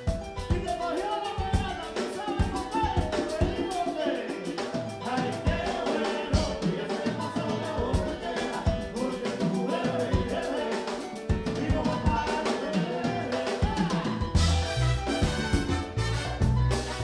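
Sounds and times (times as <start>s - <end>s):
percussion strikes: 0.0s - 17.0s
salsa band playing: 0.0s - 17.0s
man singing: 0.4s - 14.6s.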